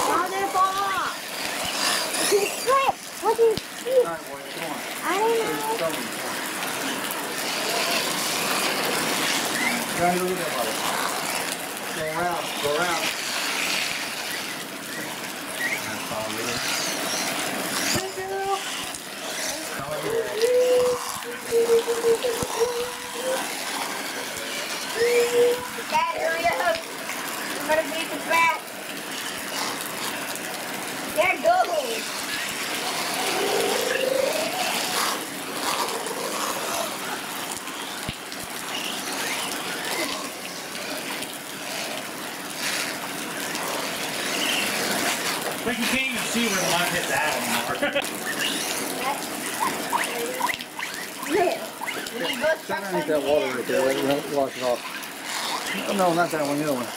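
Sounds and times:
outdoor background hiss: 0.0 - 56.9
people talking and calling out: 0.0 - 56.9.

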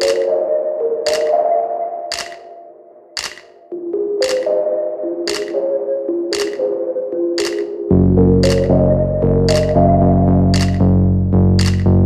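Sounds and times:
electronic music with held synth notes: 0.0 - 3.0, 3.6 - 12.0
sharp percussive snap: 1.1 - 1.3, 2.1 - 2.5, 3.2 - 3.6, 5.3 - 5.6, 6.3 - 6.6, 7.4 - 7.7, 8.4 - 8.7, 9.5 - 9.8, 10.5 - 10.8, 11.6 - 12.0.

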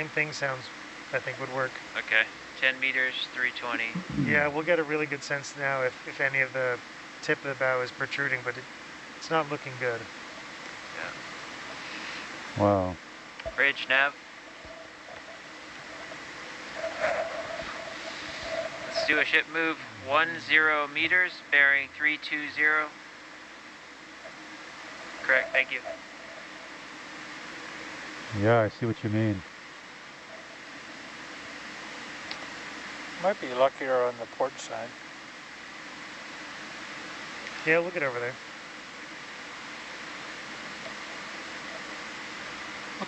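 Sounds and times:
faint wavering hum: 0.0 - 43.0
steady hiss: 0.0 - 43.0.

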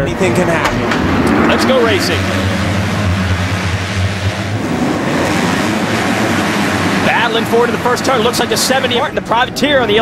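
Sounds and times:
low drone: 0.0 - 9.1
motocross bikes at full throttle: 0.0 - 10.0.

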